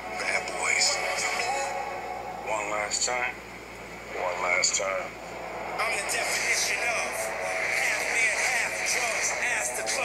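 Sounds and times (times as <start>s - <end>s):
voice: 0.2s - 1.8s, 2.4s - 3.4s, 4.1s - 5.2s, 5.8s - 10.0s.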